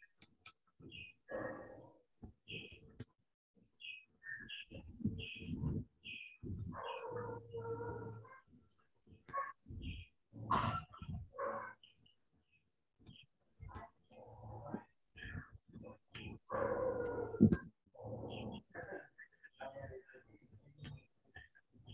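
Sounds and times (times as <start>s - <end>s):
birds chirping: 0.0s - 21.9s.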